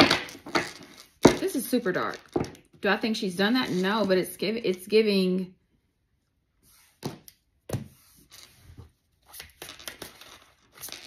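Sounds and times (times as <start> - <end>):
cards being shuffled: 8.2 - 11.0.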